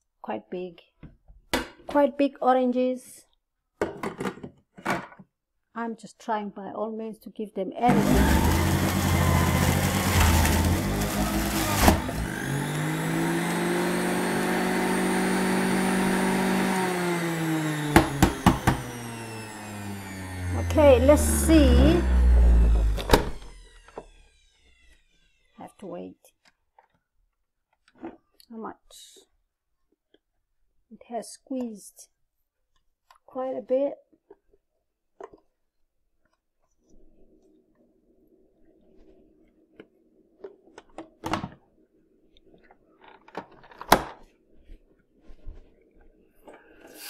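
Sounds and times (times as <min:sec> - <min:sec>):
juicer motor winding down: 0:07.9 - 0:25.4
plastic juicer parts knocking: 0:17.8 - 0:19.0.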